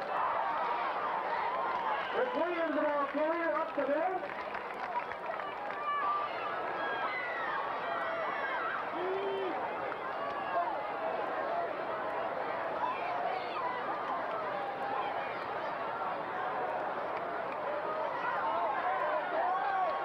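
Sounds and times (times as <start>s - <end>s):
crowd murmur: 0.0s - 20.0s
spectators shouting: 5.5s - 20.0s.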